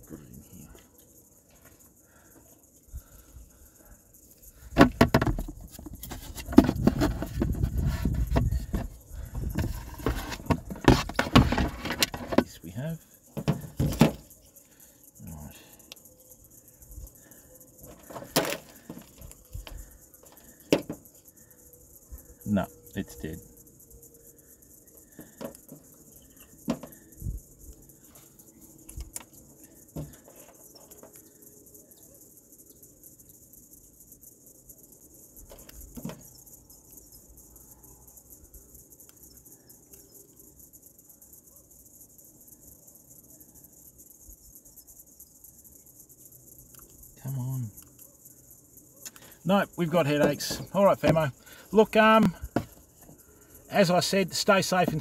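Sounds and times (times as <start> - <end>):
steady high hiss: 49.1 - 55.0.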